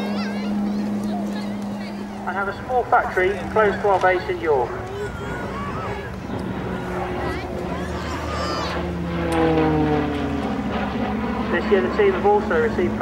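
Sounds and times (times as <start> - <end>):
turboprop aircraft flying by: 0.0 - 13.0.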